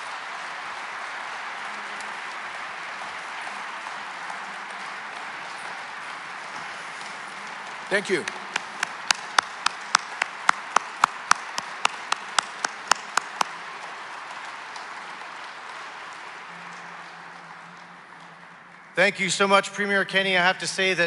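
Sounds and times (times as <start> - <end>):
loud close hand claps: 0.0 - 19.0
audience applause: 0.0 - 19.5.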